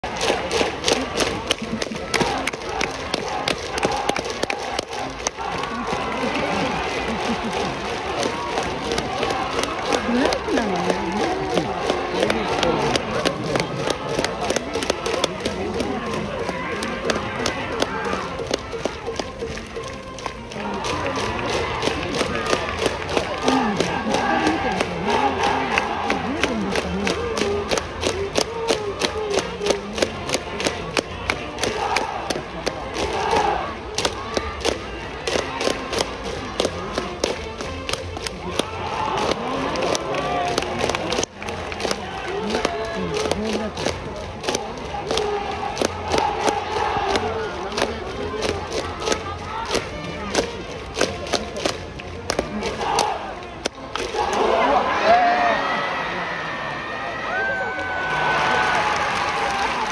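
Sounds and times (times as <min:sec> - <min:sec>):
crowd chanting in unison: 0:01.9 - 0:14.6, 0:22.2 - 0:27.7, 0:31.6 - 0:34.5, 0:44.7 - 0:48.0.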